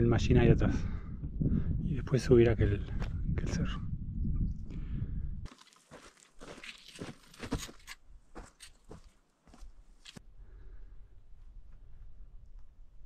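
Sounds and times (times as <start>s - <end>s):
footsteps crunching on gravel: 5.5s - 10.2s.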